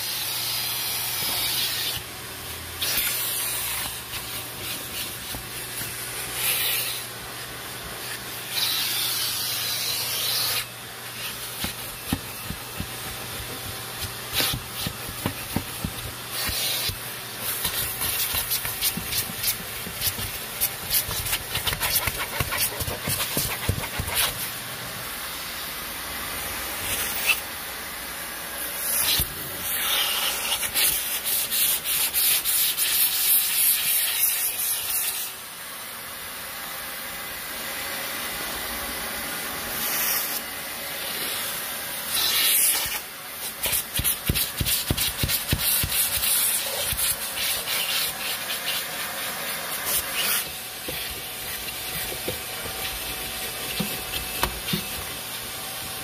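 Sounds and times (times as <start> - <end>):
vacuum cleaner running: 0.0 - 56.0
nozzle scraping upholstery: 2.8 - 7.1, 8.0 - 24.5, 43.6 - 55.2.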